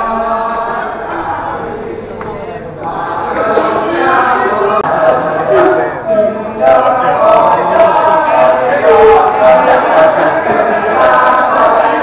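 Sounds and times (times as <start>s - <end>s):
male chorus chanting: 0.0s - 12.0s.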